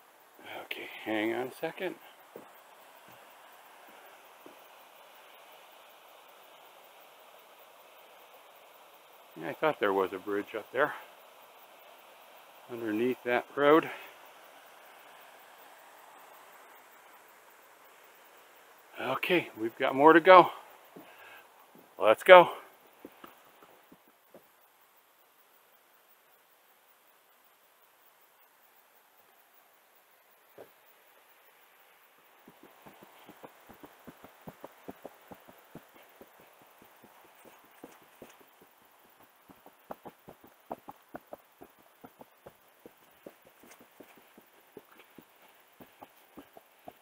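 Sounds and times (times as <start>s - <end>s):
faint hiss: 0.0s - 47.0s
footsteps on wooden boardwalk: 32.4s - 47.0s.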